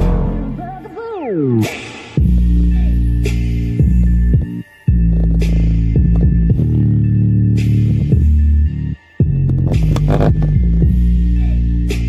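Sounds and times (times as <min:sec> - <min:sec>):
bass-heavy music through speaker: 0:00.0 - 0:12.0.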